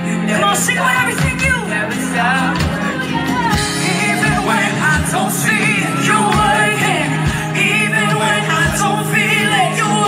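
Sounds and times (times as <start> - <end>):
full band playing: 0.0 - 10.0
singers singing gospel song: 0.0 - 10.0.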